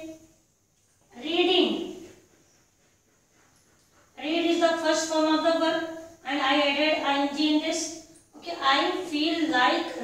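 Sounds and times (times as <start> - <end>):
woman speaking: 1.1 - 2.0, 4.2 - 10.0.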